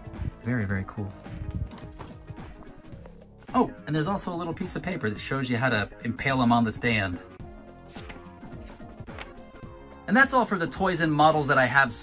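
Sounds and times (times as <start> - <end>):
quiet background music: 0.0 - 12.0
paper catalogue rustling: 0.8 - 2.4, 7.8 - 9.5.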